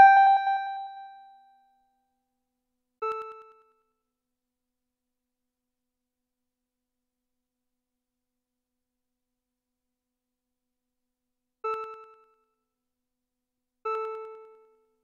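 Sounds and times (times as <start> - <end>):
electronic tone with echoes: 0.0 - 1.0.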